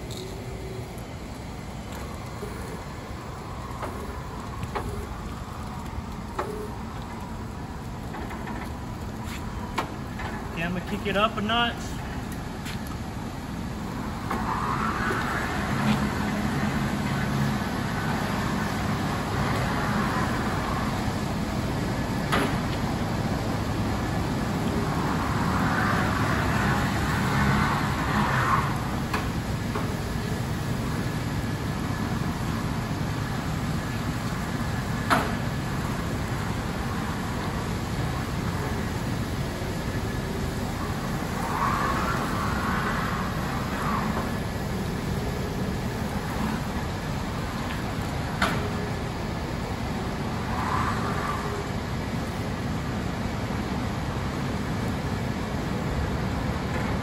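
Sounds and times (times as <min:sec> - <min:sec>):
small wheels rolling on concrete: 0:00.0 - 0:52.4.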